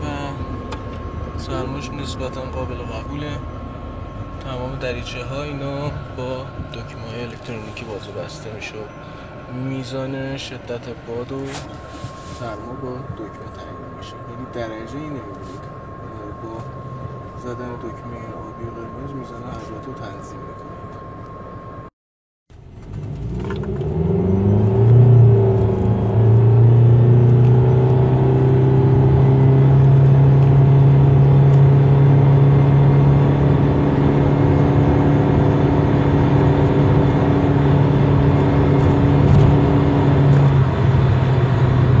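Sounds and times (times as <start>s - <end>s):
car engine accelerating: 0.0s - 21.9s, 22.5s - 42.0s.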